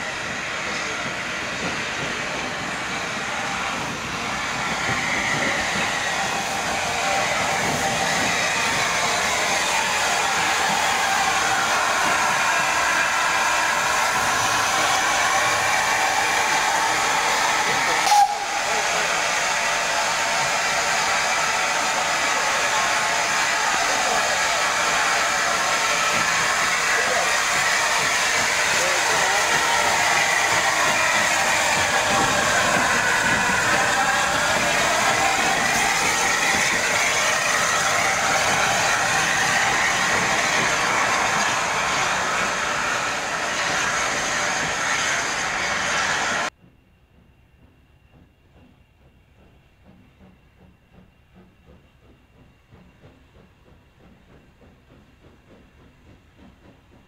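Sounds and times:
steam locomotive hissing: 0.0s - 57.0s.

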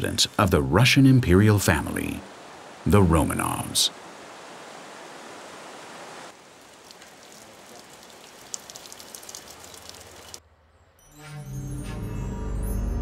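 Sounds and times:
light splashes and clicks: 6.6s - 10.4s
water running into bottle: 6.6s - 10.4s.

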